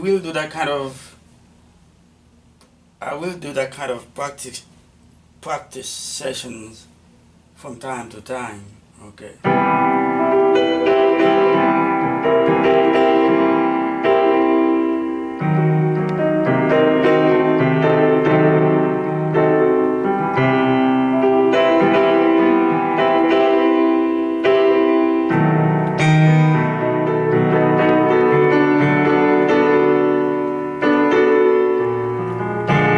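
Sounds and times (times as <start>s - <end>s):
electronic keyboard playing chords: 9.5s - 32.9s.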